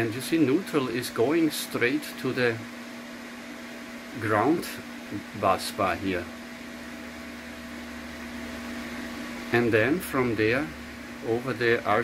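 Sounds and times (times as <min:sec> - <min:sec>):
machine hum with hiss: 0:00.0 - 0:12.0.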